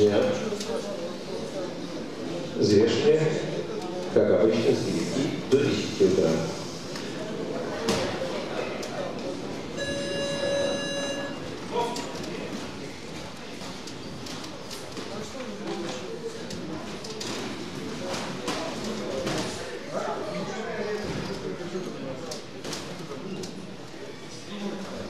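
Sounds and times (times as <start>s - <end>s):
voices echoing in gym hall: 0.0s - 25.0s
electronic round buzzer: 9.8s - 11.4s.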